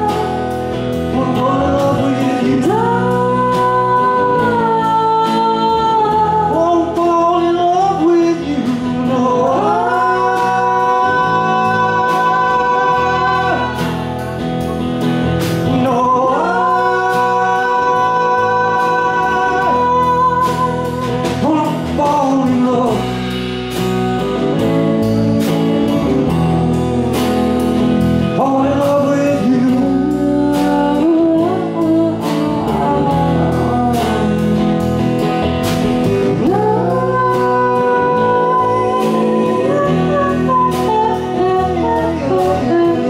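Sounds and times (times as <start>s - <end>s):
drum kit beat: 0.0s - 7.2s, 8.6s - 43.0s
person singing: 0.0s - 14.8s, 15.6s - 23.3s, 28.2s - 35.0s, 35.8s - 43.0s
electric guitar: 0.0s - 43.0s.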